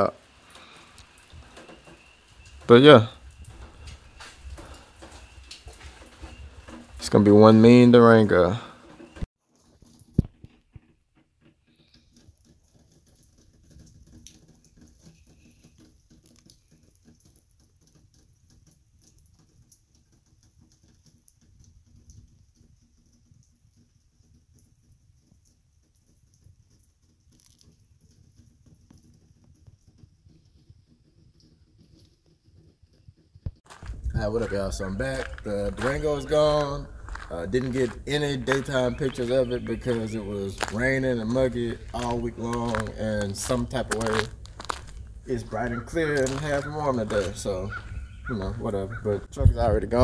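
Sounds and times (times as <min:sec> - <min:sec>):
light rain patter: 0:00.0 - 0:50.0.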